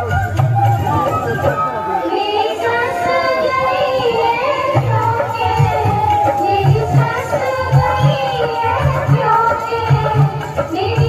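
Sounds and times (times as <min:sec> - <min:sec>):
dance music: 0:00.5 - 0:11.0
high-pitched voice singing: 0:00.9 - 0:11.0.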